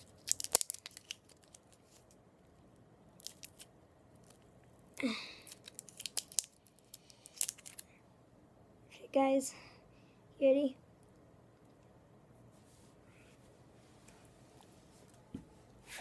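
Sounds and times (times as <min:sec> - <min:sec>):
candy wrapper crinkling: 0:00.0 - 0:02.2, 0:03.1 - 0:04.8, 0:05.4 - 0:07.9.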